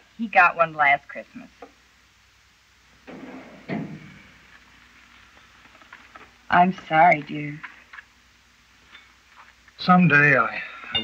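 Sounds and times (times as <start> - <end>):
drawer scraping and rattling: 3.1 - 4.3.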